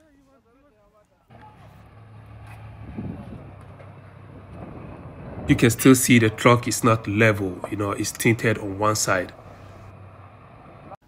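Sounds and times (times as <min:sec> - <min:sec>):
faint voices: 0:00.0 - 0:03.6
truck engine humming: 0:00.0 - 0:11.0.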